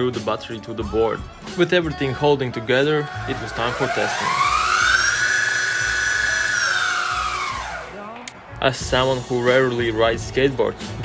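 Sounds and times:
electric motor whine: 0:03.1 - 0:08.0.

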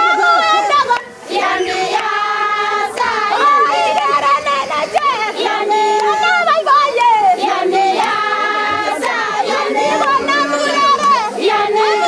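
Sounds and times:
high-pitched voices singing together: 0:00.0 - 0:12.0.

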